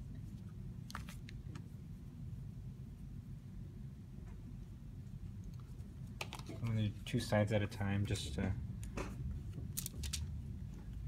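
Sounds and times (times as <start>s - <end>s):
low steady hum: 0.0s - 11.0s
paper folded and pressed: 9.7s - 10.3s
paper crinkles: 9.8s - 10.3s.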